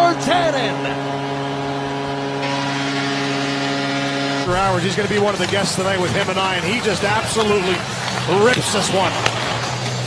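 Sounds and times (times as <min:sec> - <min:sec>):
goal horn long note: 0:00.0 - 0:04.8
crowd cheering: 0:00.0 - 0:10.0.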